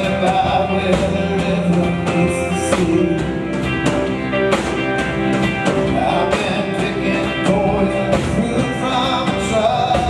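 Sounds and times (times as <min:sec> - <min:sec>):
drum kit beat: 0:00.0 - 0:10.0
guitars: 0:00.0 - 0:10.0
keyboards: 0:00.0 - 0:10.0.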